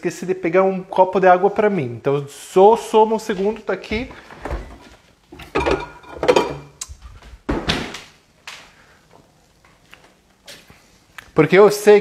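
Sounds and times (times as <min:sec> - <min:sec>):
cupboards and dishes handled: 0:04.0 - 0:06.8.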